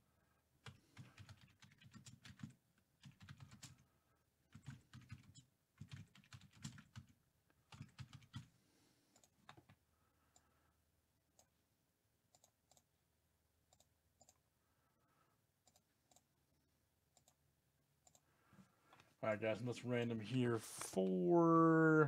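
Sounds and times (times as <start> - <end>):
typing on computer keyboard: 0.6 - 3.8, 4.5 - 8.5.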